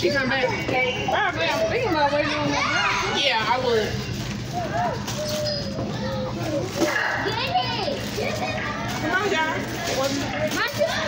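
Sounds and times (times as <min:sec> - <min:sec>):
children's voices chattering: 0:00.0 - 0:11.0.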